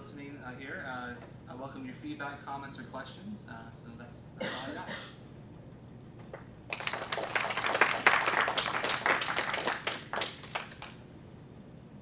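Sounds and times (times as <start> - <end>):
audience applauding: 6.7 - 11.0.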